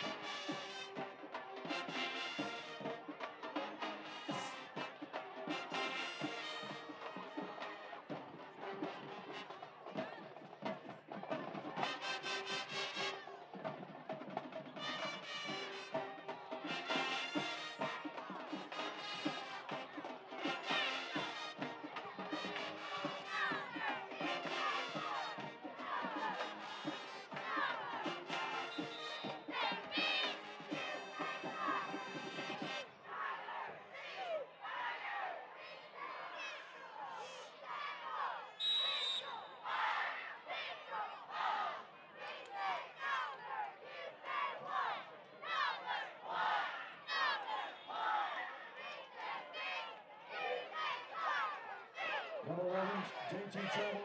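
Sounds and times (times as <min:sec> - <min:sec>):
marching band playing: 0:00.0 - 0:33.7
crowd shouting and cheering: 0:00.0 - 0:54.0.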